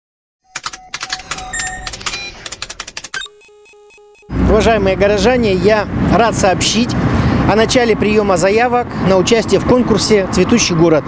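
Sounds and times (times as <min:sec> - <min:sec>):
rapid clicks and high pings: 0:00.5 - 0:04.4
pulsing electronic tone: 0:01.1 - 0:04.6.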